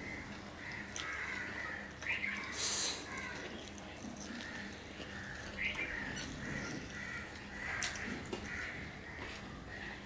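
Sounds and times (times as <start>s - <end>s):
birds chirping and calling: 0.0s - 10.0s.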